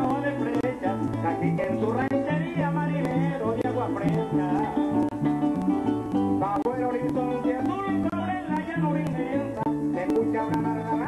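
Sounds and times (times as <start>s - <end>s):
bass notes: 0.0s - 11.0s
man singing: 0.0s - 11.0s
maracas: 0.0s - 11.0s.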